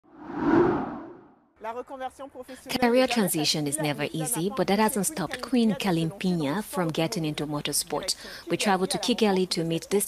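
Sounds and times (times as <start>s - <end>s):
whoosh sound effect: 0.1s - 1.4s
woman speaking: 2.6s - 10.0s.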